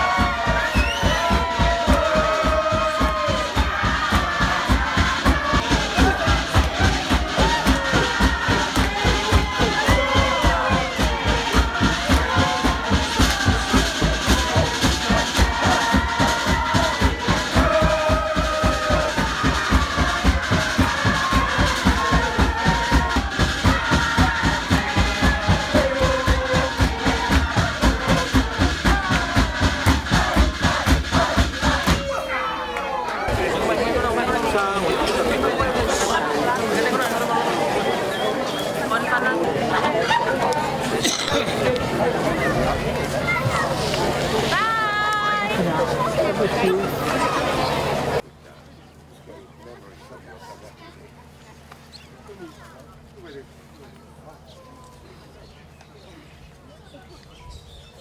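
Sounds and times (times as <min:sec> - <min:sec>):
fast beaten rhythm: 0:00.0 - 0:32.3
group singing and shouting: 0:00.0 - 0:48.2.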